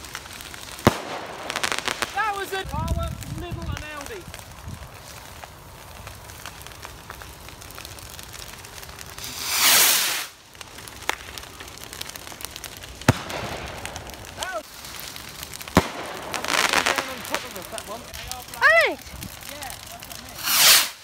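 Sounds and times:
firework bangs: 0:00.0 - 0:21.0
firework rocket launch whoosh: 0:09.2 - 0:10.4, 0:20.3 - 0:21.0.

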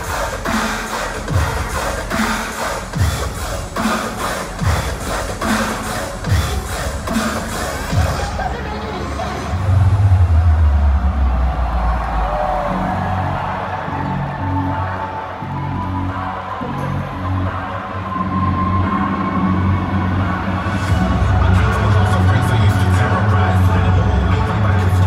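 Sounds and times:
loud electronic bass music: 0:00.0 - 0:25.0.

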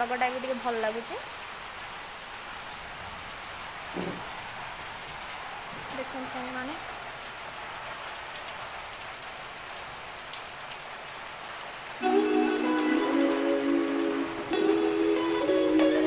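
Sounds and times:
rain hiss: 0:00.0 - 0:16.0
background music with stepping melody: 0:12.0 - 0:16.0.

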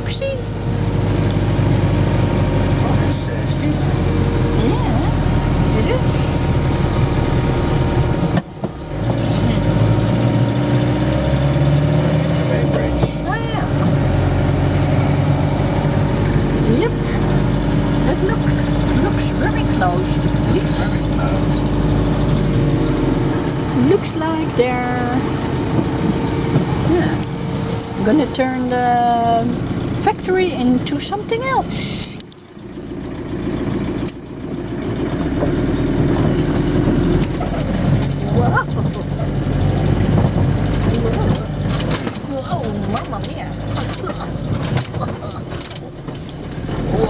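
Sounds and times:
van engine and road noise: 0:00.0 - 0:47.0.

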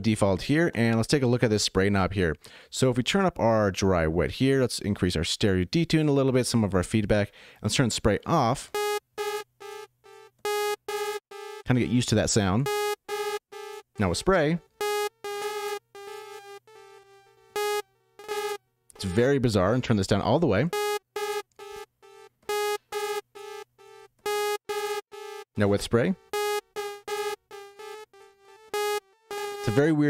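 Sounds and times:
buzzy synth note with echoes: 0:14.7 - 0:19.2, 0:20.7 - 0:25.4, 0:26.2 - 0:29.9
sawtooth synth note with echoes: 0:14.8 - 0:18.6.

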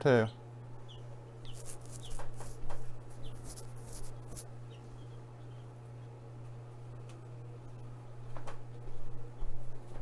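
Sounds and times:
steady low hum: 0:00.0 - 0:10.0
chick peeping: 0:00.2 - 0:06.2.

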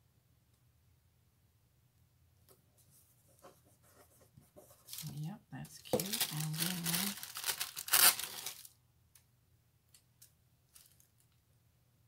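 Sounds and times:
sticker sheet crinkling: 0:05.8 - 0:08.7.

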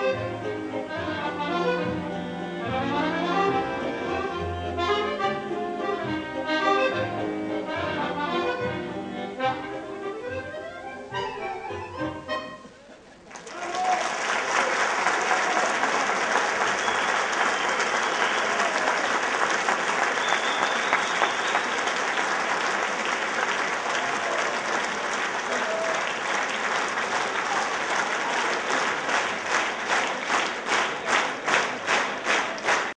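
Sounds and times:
large audience applauding: 0:13.2 - 0:32.9
rhythmic clapping: 0:13.3 - 0:32.9.

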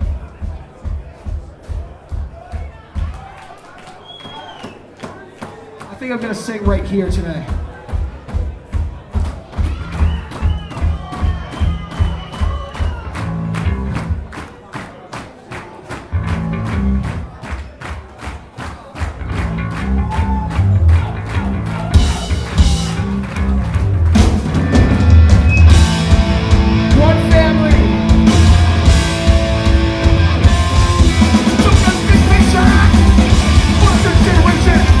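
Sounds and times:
driving drum beat: 0:00.0 - 0:03.4, 0:06.1 - 0:14.9, 0:16.0 - 0:35.0
punk band playing live: 0:06.6 - 0:14.5, 0:16.1 - 0:18.0, 0:19.0 - 0:35.0
heavy bass guitar: 0:12.9 - 0:14.3, 0:16.1 - 0:17.4, 0:19.2 - 0:35.0.

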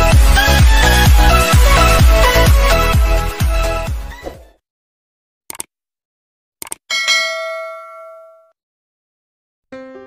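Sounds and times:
bright bell ding: 0:06.9 - 0:08.5.

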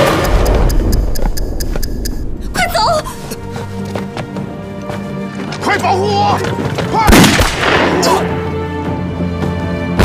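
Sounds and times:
dramatic music score: 0:00.0 - 0:10.0.

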